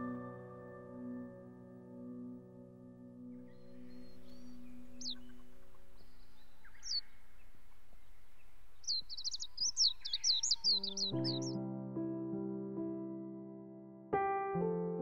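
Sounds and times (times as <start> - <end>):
piano music: 0.0 - 7.4, 8.6 - 15.0
faint outdoor hiss: 3.0 - 11.5
small bird chirping: 3.5 - 11.6.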